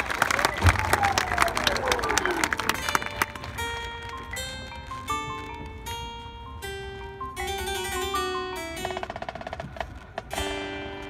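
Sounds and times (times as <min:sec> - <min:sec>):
crowd applause: 0:00.0 - 0:05.4
ringing mallet-keyboard notes: 0:02.9 - 0:11.0.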